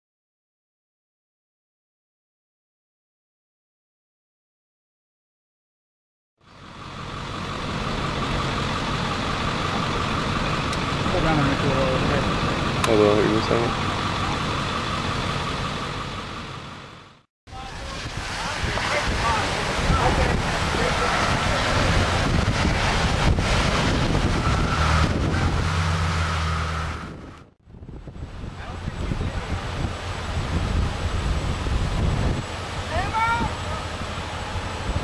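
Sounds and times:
wind on microphone: 17.6s - 35.0s.

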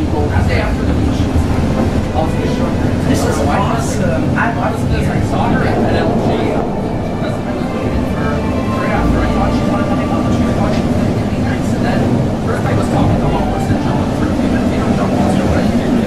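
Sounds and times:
indistinct passenger voices: 0.0s - 16.0s
train rumble with faint whine: 0.0s - 16.0s.

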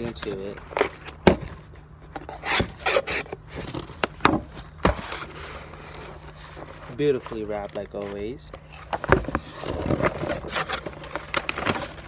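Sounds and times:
cardboard scraping and rubbing: 0.0s - 12.0s.

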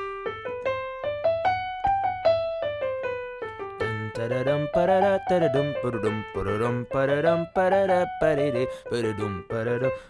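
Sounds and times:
digital piano playing a scale: 0.0s - 10.0s.

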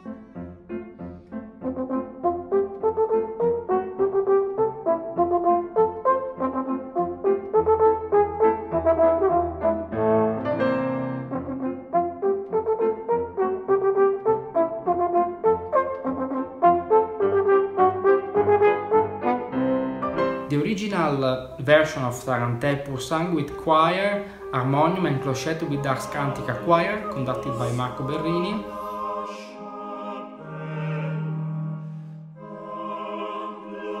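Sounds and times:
french horn melody: 1.6s - 34.0s
piano running notes: 16.1s - 32.6s.

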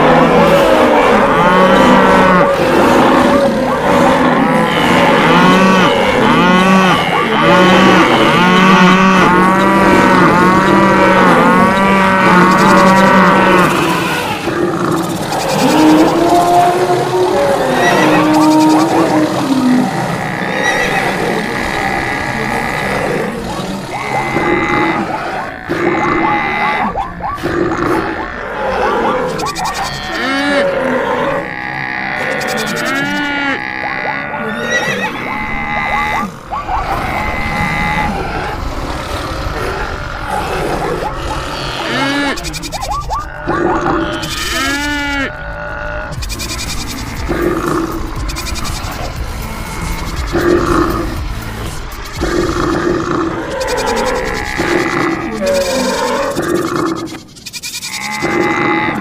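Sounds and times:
animal calls: 0.0s - 59.0s
background music: 28.4s - 57.0s.

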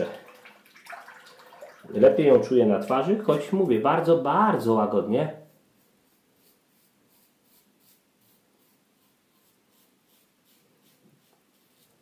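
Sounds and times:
tap water running into sink: 0.0s - 3.4s
razor being rinsed: 5.4s - 12.0s.

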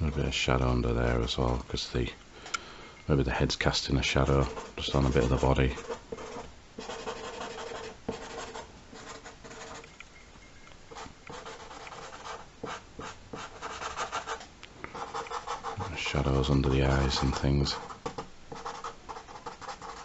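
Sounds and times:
marker scratching on paper: 4.2s - 9.9s, 10.9s - 16.1s, 16.8s - 20.0s.

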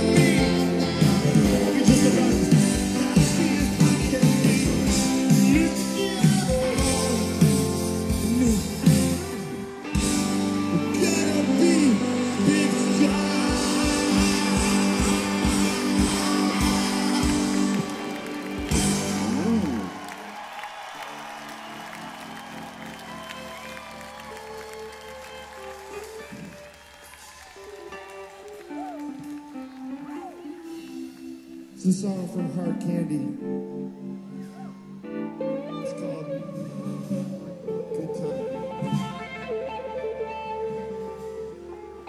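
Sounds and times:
rock band with strummed guitar: 0.0s - 26.6s, 34.5s - 42.0s
audience applauding and cheering: 0.0s - 31.8s.

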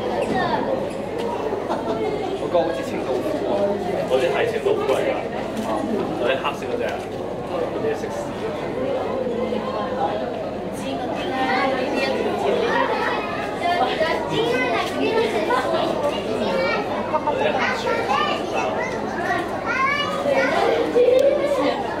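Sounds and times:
children chattering and calling out: 0.0s - 22.0s.

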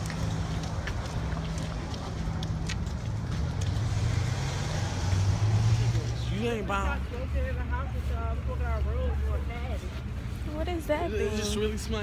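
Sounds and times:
road noise: 0.0s - 12.0s
vehicle engine hum: 0.0s - 12.0s.

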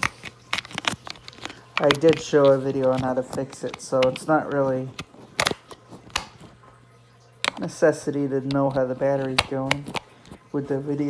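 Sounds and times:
plastic toy handling clicks: 0.0s - 6.5s, 8.4s - 10.4s.

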